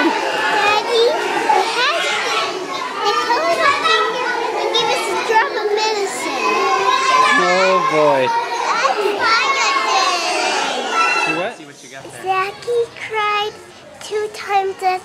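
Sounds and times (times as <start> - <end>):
children talking and shouting: 0.0 - 15.0.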